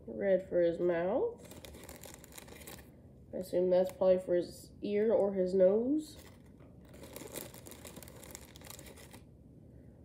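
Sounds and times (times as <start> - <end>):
plastic bag crinkling: 1.4 - 3.0, 6.1 - 9.3.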